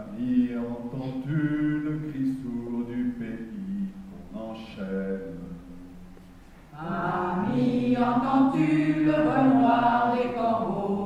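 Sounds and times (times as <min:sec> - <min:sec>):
mixed chorus singing: 0:06.7 - 0:11.0.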